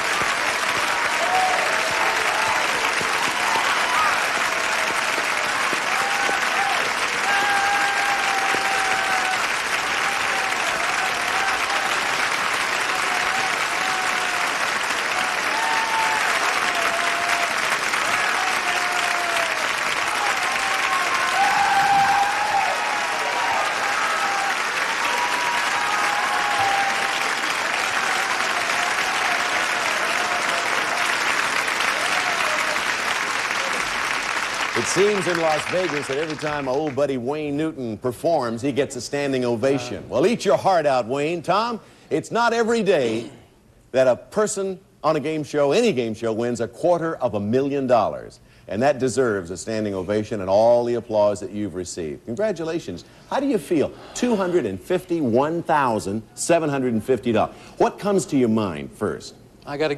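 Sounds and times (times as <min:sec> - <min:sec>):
audience clapping: 0:00.0 - 0:37.2.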